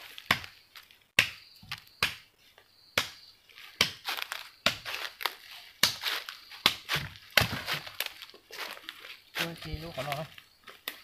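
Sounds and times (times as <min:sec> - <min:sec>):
dry leaf litter crunching: 0:03.5 - 0:11.0.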